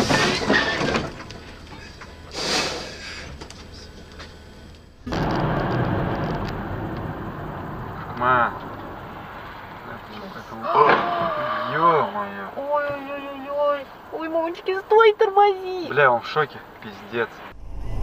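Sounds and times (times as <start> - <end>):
loud noisy bursts: 5.0 - 10.0
car road and engine noise: 12.5 - 18.0.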